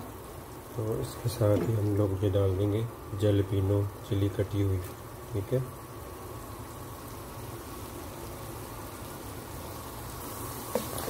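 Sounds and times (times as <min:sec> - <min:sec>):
garlic sizzling in butter: 0:00.0 - 0:11.0.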